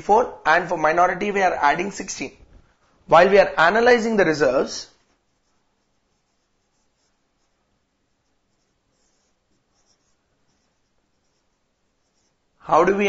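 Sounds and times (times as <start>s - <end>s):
marker writing on whiteboard: 4.9s - 12.6s.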